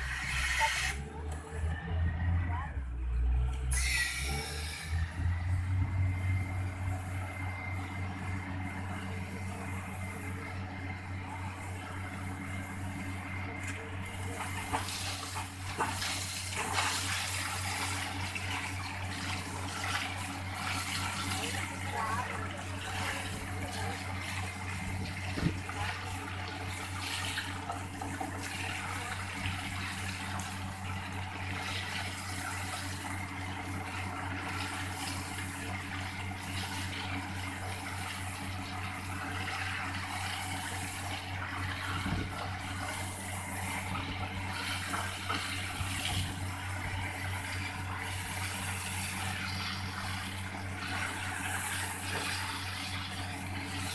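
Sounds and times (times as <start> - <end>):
drilling rig engine hum: 0.0 - 53.9
rushing hiss of water: 3.7 - 5.1.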